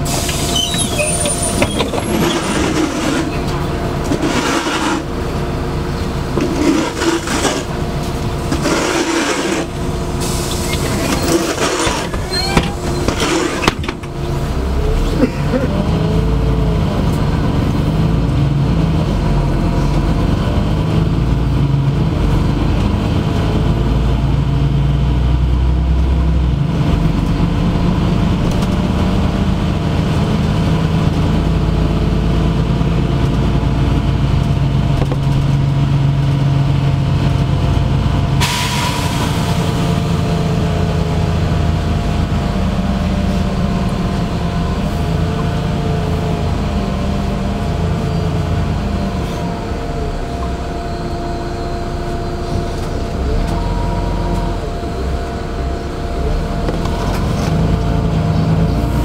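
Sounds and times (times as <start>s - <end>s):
bus engine droning: 0.0s - 59.0s
rising whine: 38.8s - 59.0s.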